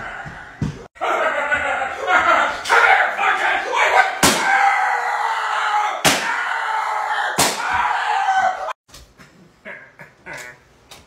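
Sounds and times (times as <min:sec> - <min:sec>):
loud smacks: 0:06.0 - 0:06.4, 0:07.4 - 0:07.8.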